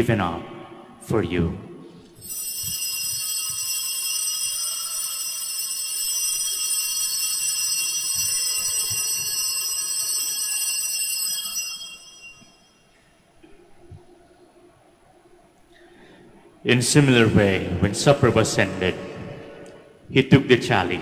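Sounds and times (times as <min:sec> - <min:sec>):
altar bells ringing: 0:02.2 - 0:13.2.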